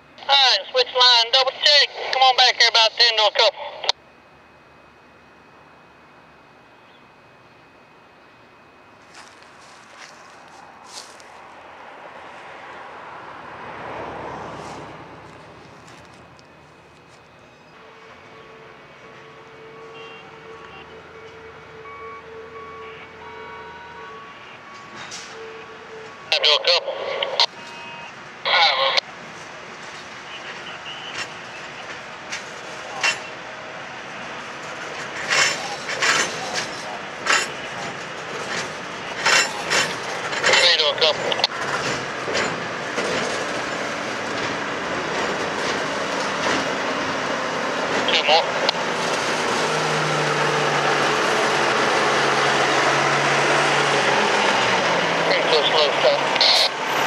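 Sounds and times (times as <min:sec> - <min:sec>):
railcars rolling: 0:04.1 - 0:21.9, 0:22.5 - 0:57.0
truck engine: 0:07.4 - 0:57.0.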